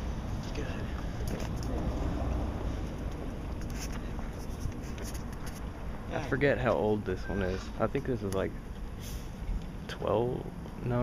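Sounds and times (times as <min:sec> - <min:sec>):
wind and handling rumble: 0:00.0 - 0:11.0
scratchy rustling: 0:03.6 - 0:05.7.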